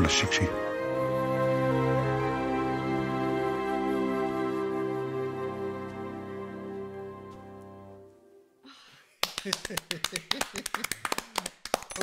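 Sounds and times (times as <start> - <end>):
people clapping: 9.1 - 12.0
people laughing: 9.3 - 11.2.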